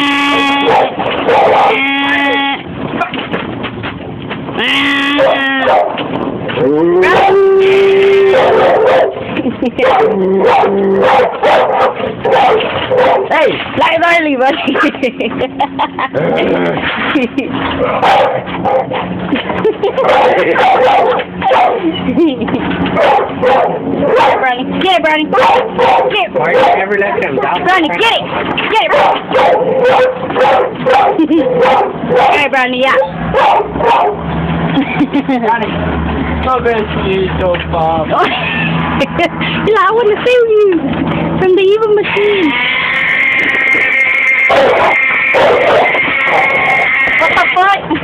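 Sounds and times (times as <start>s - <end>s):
dog whining cry: 0.0s - 3.1s, 4.6s - 6.0s, 6.6s - 13.4s, 43.7s - 47.0s
dogs barking: 0.2s - 3.2s, 5.1s - 13.6s, 14.6s - 35.0s, 43.2s - 47.4s
small engine humming: 40.8s - 48.0s.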